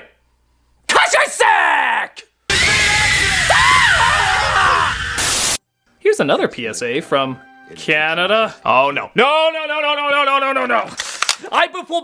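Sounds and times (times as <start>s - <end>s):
person screaming: 1.3s - 5.4s.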